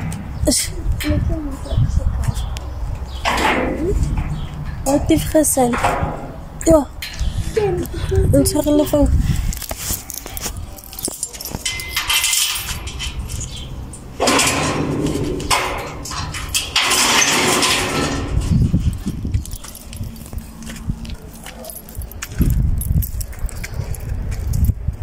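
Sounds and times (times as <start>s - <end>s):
metal gate rattling: 0.0s - 1.3s, 3.0s - 9.0s, 10.0s - 23.2s
keys jangling: 9.5s - 13.7s, 18.7s - 24.8s.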